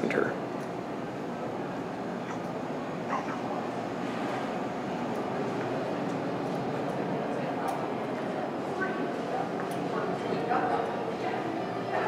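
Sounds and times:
ventilation hum: 0.0s - 12.0s.

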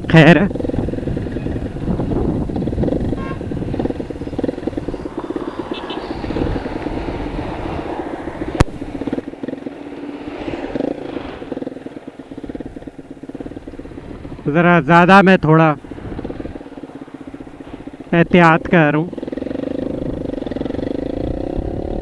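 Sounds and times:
motorcycle engine running: 0.0s - 22.0s
wind and road noise: 0.0s - 22.0s.

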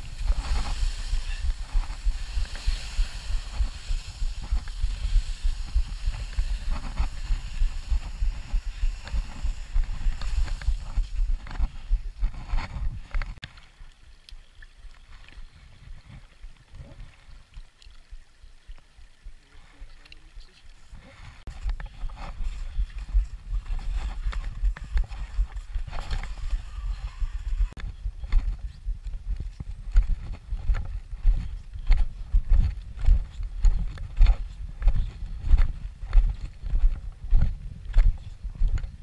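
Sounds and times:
footsteps on gravelly trail: 0.0s - 13.4s, 21.0s - 39.0s
skis scraping over snow: 0.0s - 13.4s, 20.8s - 27.8s
wind rumble on microphone: 0.0s - 13.4s, 20.8s - 39.0s
stream trickling: 13.4s - 21.6s.

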